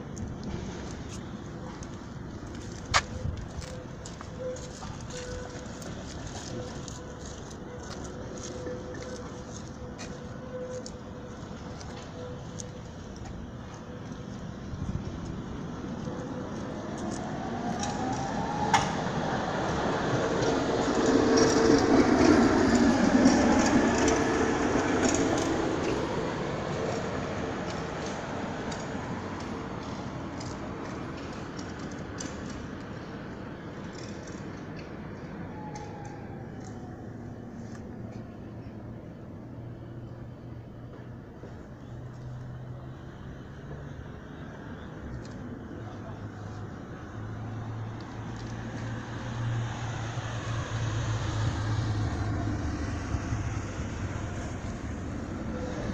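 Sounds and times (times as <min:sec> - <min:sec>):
passing vehicle rumble: 0:00.0 - 0:55.9.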